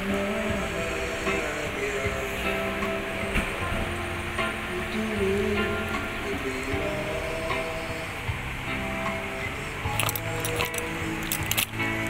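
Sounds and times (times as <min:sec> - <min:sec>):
electronic keyboard organ chords: 0:00.0 - 0:12.0
sharp clicks: 0:09.9 - 0:12.0.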